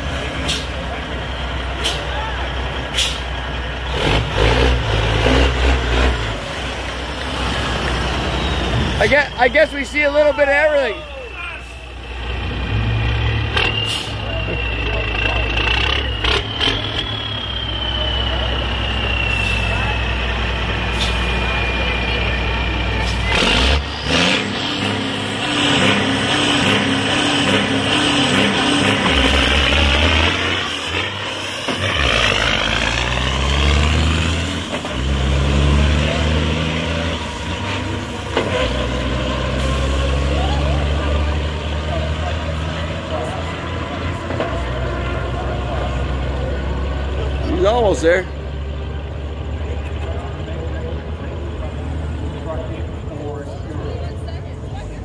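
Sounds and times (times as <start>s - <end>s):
diesel truck engine accelerating: 0.0s - 55.0s.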